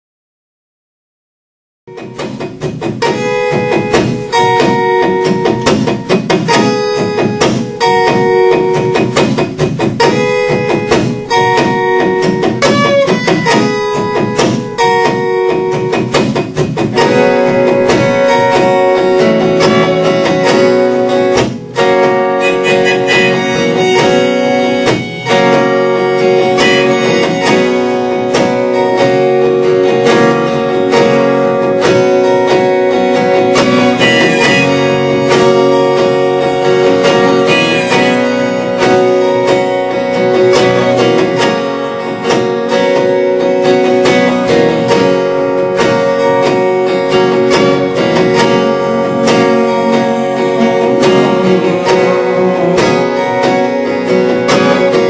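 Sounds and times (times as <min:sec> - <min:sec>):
acoustic guitar strumming: 0:01.9 - 0:55.0
harmonica melody: 0:12.6 - 0:14.2, 0:21.9 - 0:28.8, 0:33.1 - 0:41.2.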